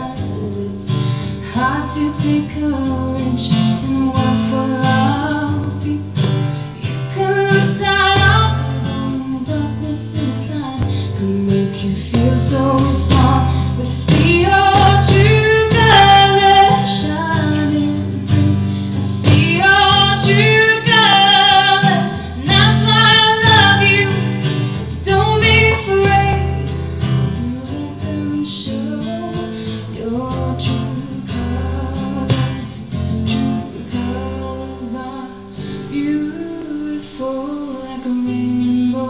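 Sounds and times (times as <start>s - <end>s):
strummed acoustic guitar: 0.0s - 39.0s
woman singing a slow ballad: 0.0s - 39.0s.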